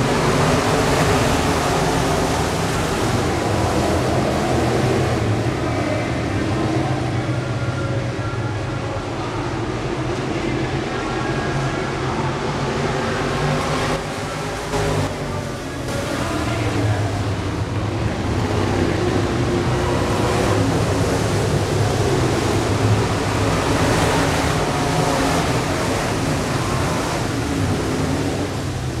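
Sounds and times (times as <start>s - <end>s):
race car engines passing: 0.0s - 29.0s.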